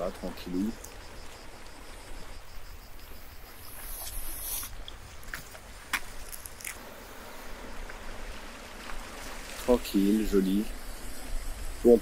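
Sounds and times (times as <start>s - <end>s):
insects chirping: 0.0s - 12.0s
wind rumble on microphone: 10.3s - 12.0s.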